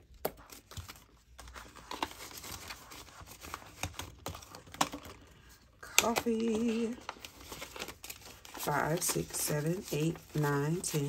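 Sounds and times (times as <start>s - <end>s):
paper bills crinkling: 0.0s - 11.0s.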